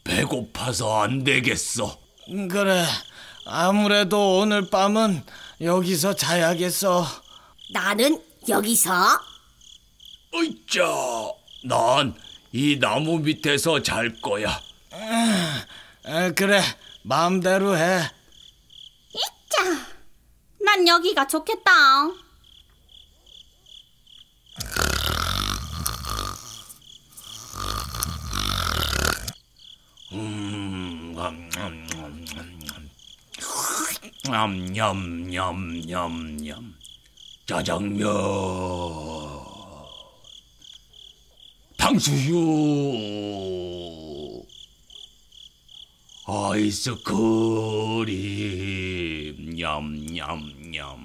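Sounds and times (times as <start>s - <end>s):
cricket chirping: 0.0s - 51.0s
exaggerated snores: 24.6s - 29.4s
low voice hum: 30.1s - 32.9s.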